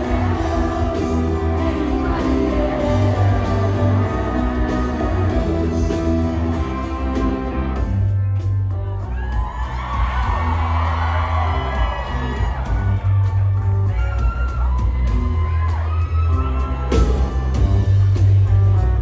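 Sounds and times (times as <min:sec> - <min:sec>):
electric guitars: 0:00.0 - 0:09.0
booming bass: 0:00.0 - 0:19.0
drums: 0:00.0 - 0:19.0
keyboards: 0:00.0 - 0:19.0.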